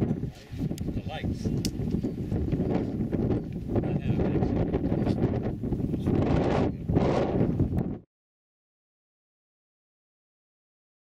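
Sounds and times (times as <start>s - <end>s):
wind buffeting microphone: 0.0s - 8.1s.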